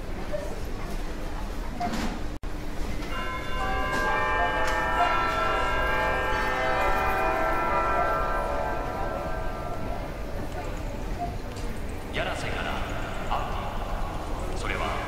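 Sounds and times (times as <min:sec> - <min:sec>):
held electronic chord: 0:03.0 - 0:11.1.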